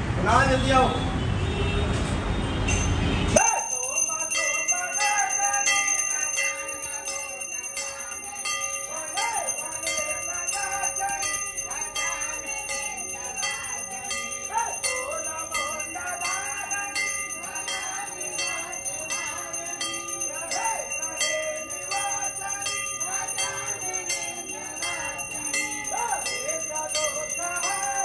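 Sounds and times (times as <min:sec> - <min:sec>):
temple bells ringing: 0:02.7 - 0:28.0
voices singing: 0:03.4 - 0:28.0.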